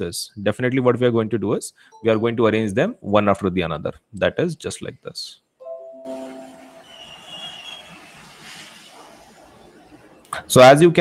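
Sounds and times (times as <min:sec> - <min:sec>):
computer notification chime: 0:05.6 - 0:07.0
brief high squeal: 0:06.5 - 0:08.9.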